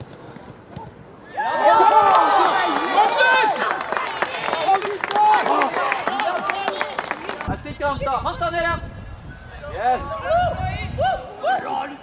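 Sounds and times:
people cheering and shouting: 1.3 - 7.4
scattered claps: 1.8 - 7.6.

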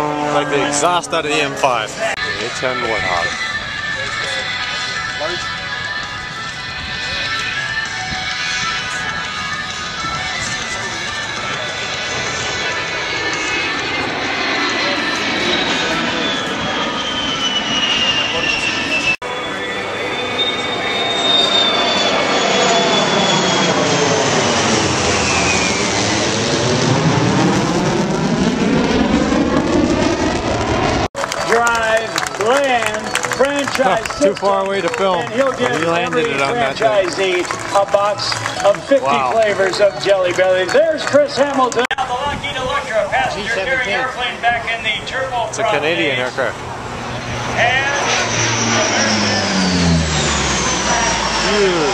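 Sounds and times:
jet aircraft passing: 0.0 - 51.9.

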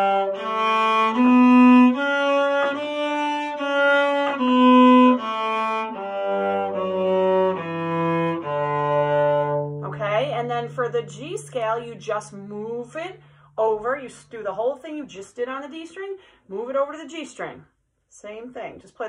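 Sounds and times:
cello playing a scale: 0.0 - 15.3.

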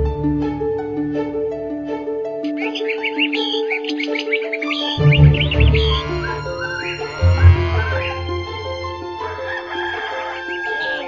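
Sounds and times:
light background music: 0.0 - 11.0
rapid bird chirping: 2.4 - 8.3.

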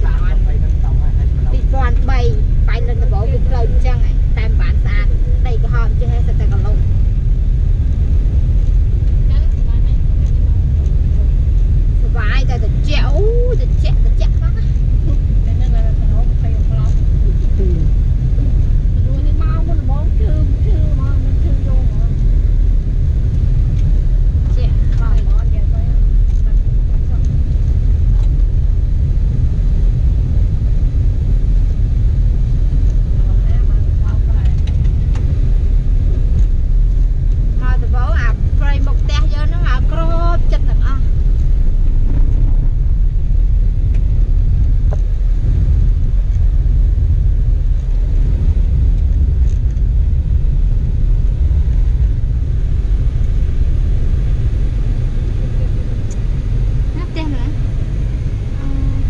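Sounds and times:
car rumbling on dirt road: 0.0 - 59.0.

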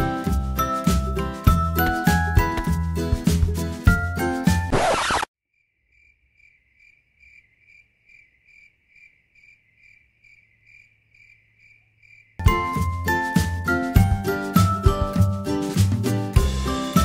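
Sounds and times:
music: 0.0 - 4.8, 12.4 - 17.0
cricket chirping: 5.5 - 12.4.

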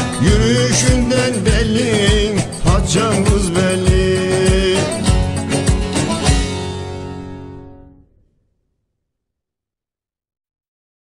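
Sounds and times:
deep drum beat: 0.0 - 6.9.

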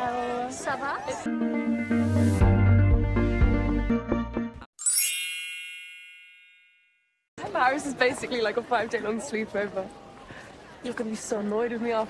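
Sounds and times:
bright bell-like ding: 4.8 - 7.2.

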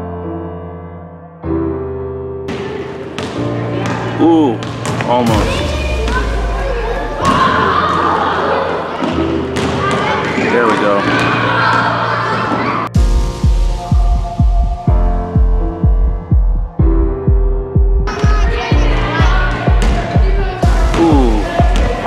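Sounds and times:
basketballs bouncing on wooden floor: 2.5 - 7.9, 8.9 - 12.8, 18.1 - 22.0
children's voices echoing: 5.2 - 12.9, 18.1 - 22.0.

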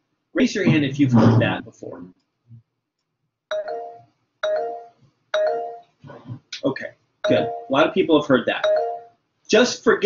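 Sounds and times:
electronic two-tone chime: 7.3 - 7.8.

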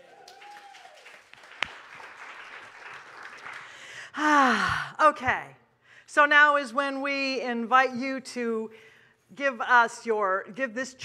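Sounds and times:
congregation applauding: 0.0 - 4.1.

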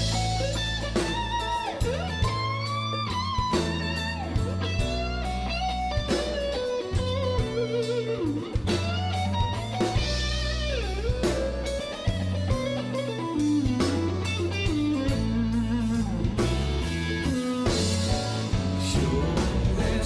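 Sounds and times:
bass and drums backing: 0.0 - 20.0
electric guitar solo: 0.0 - 20.0.

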